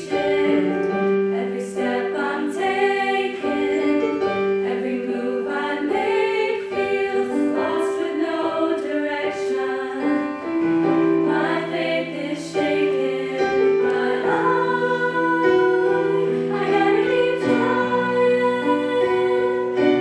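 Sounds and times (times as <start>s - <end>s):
girls singing in harmony: 0.0s - 20.0s.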